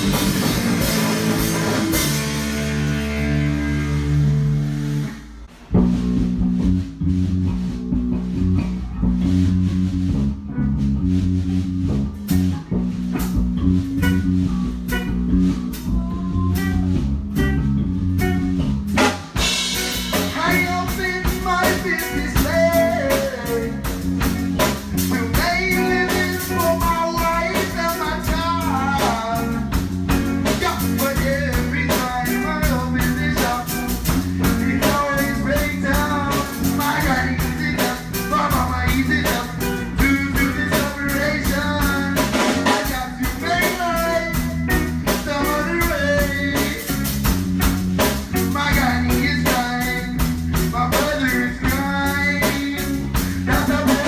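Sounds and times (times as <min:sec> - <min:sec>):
bass guitar: 0:00.0 - 0:54.0
distorted electric guitar: 0:00.0 - 0:54.0
drum kit beat: 0:00.0 - 0:54.0
person singing: 0:14.1 - 0:17.6, 0:19.6 - 0:24.4, 0:25.0 - 0:29.8, 0:30.4 - 0:47.1, 0:48.4 - 0:54.0.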